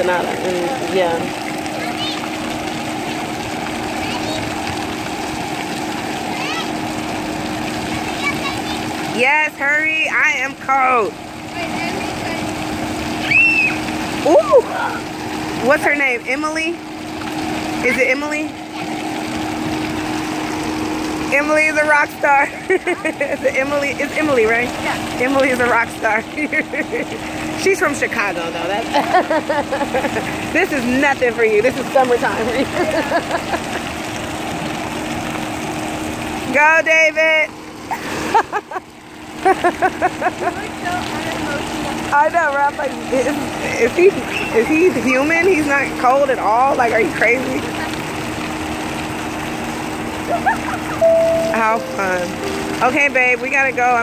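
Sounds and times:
low mechanical hum: 0.0s - 54.0s
running water rushing: 0.0s - 54.0s
woman laughing: 22.4s - 23.7s, 26.0s - 27.3s, 28.9s - 30.5s, 32.4s - 33.9s, 37.9s - 40.7s, 50.3s - 51.0s.

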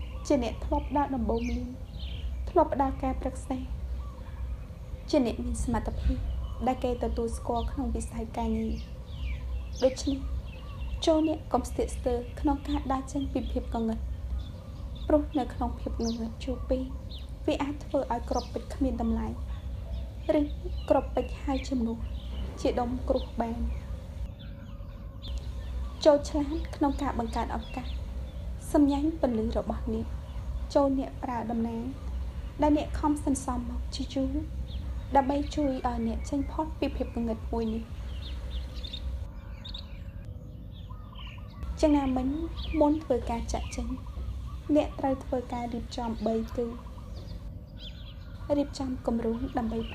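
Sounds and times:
woman reading aloud: 0.0s - 3.8s, 5.0s - 8.9s, 9.7s - 14.1s, 15.0s - 19.5s, 20.2s - 23.9s, 25.4s - 28.0s, 28.6s - 38.1s, 41.7s - 47.0s, 48.5s - 49.9s
high bird chirps: 0.0s - 49.9s
low hum: 0.0s - 49.9s.

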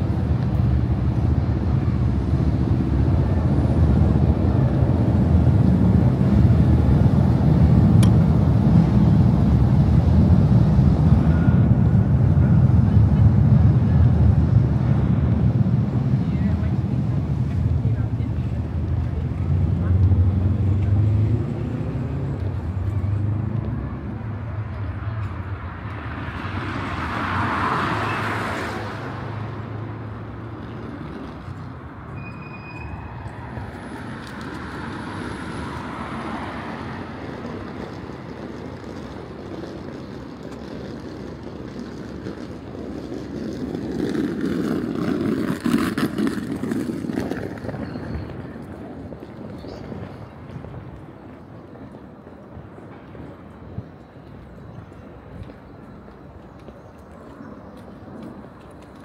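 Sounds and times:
low engine rumble: 0.0s - 27.6s, 28.8s - 59.0s
vehicle passing: 0.0s - 51.2s.

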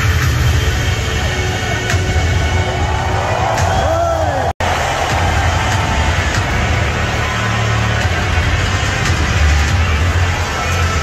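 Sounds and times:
stadium crowd roaring: 1.3s - 11.0s.

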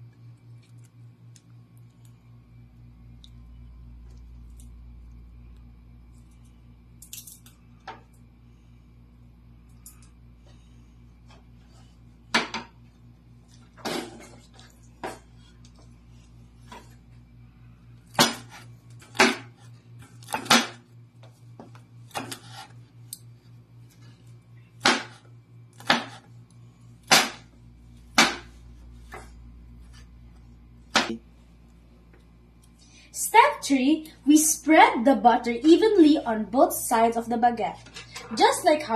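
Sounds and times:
cleaver chopping on wooden board: 25.8s - 26.2s, 28.2s - 28.5s.

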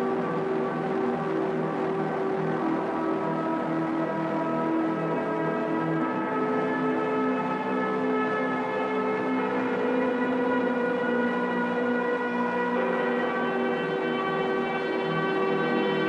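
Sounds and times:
sustained synthesizer chord: 0.0s - 16.0s.

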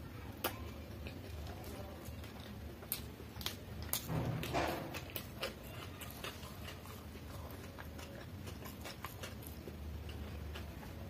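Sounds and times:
steady low hum: 0.0s - 11.0s
mouth chewing food: 0.4s - 11.0s.

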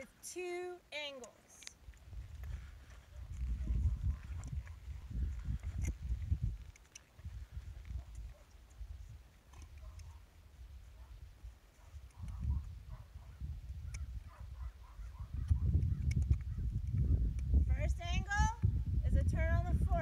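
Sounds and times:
gusting low rumble: 1.9s - 9.3s, 12.1s - 20.0s
muffled hoof steps on sand: 2.0s - 8.5s.

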